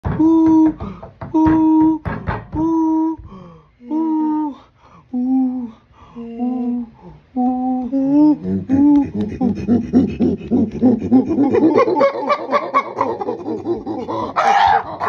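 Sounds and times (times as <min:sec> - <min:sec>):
chimpanzee hooting: 0:08.3 - 0:15.0
panting breaths: 0:08.4 - 0:11.8.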